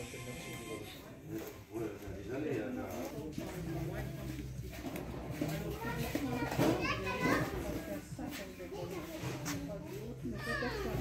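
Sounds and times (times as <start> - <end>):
people chattering: 0.0 - 11.0
child's high voice: 5.9 - 7.8.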